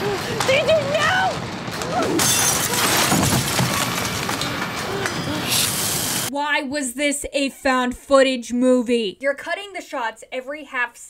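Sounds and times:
loud shattering crash: 1.3s - 5.4s.

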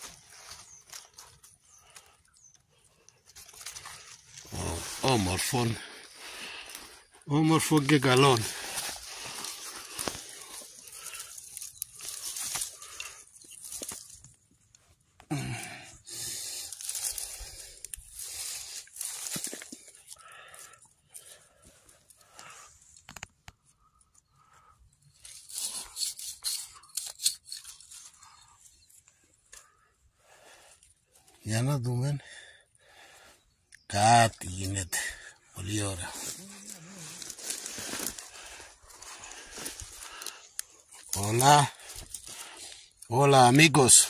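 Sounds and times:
rustling in leaf litter: 3.4s - 14.3s, 16.2s - 19.9s, 35.7s - 42.4s.

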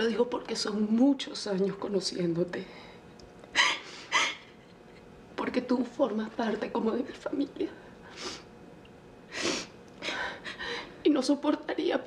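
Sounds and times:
woman sobbing: 3.5s - 4.6s, 9.3s - 11.0s.

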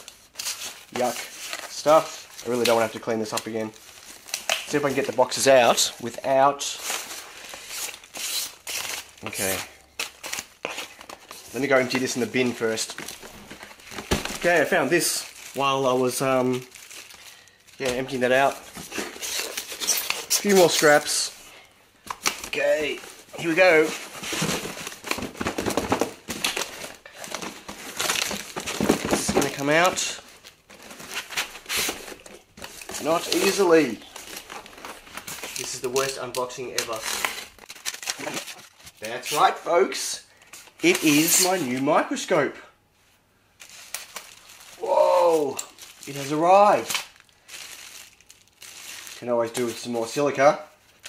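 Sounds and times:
packing peanuts rustling in a box: 0.0s - 21.4s, 22.5s - 42.2s, 43.6s - 51.0s
cardboard boxes scraping: 22.6s - 30.1s.

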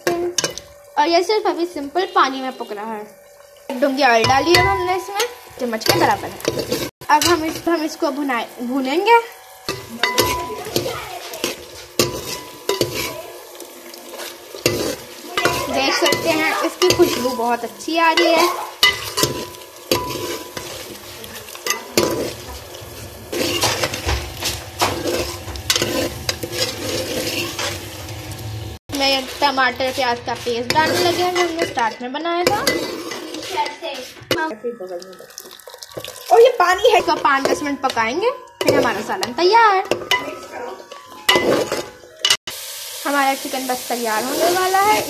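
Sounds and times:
chicken sizzling in oil: 0.0s - 45.0s
ladle scraping metal pot: 2.3s - 8.0s, 9.0s - 28.3s, 29.2s - 34.6s, 35.2s - 42.4s.

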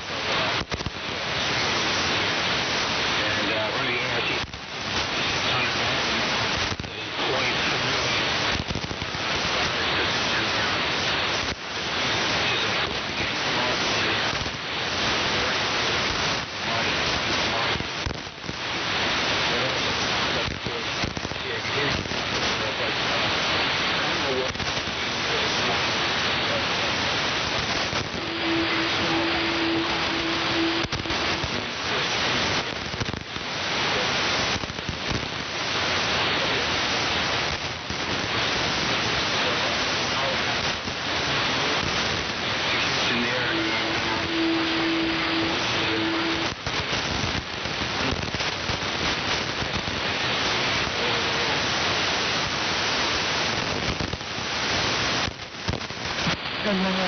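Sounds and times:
radio static: 0.0s - 57.0s
steady low tone: 28.1s - 32.4s, 42.7s - 46.6s.

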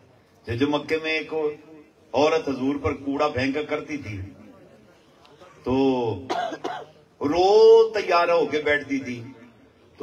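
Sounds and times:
man coughing: 6.3s - 7.0s.

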